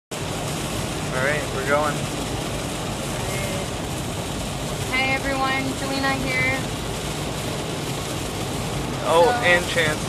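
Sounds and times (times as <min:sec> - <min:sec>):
low rumble: 0:00.1 - 0:10.0
rain on car: 0:00.1 - 0:10.0
tyres on wet road: 0:00.1 - 0:10.0.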